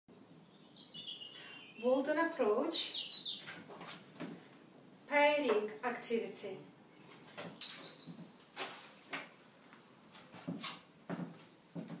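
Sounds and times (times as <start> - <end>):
small bird chirping: 0.2 - 5.9, 7.0 - 10.6, 11.4 - 12.0.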